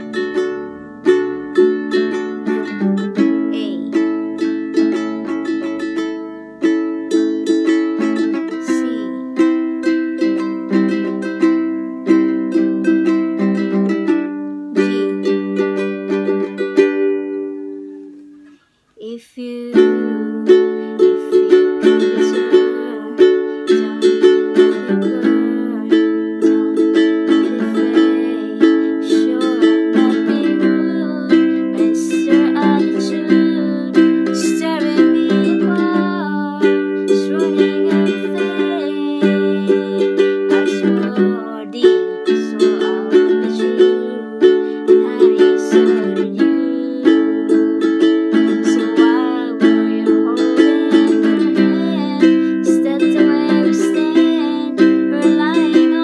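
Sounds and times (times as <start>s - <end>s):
ukulele strummed in chords: 0.0s - 18.6s, 19.4s - 56.0s.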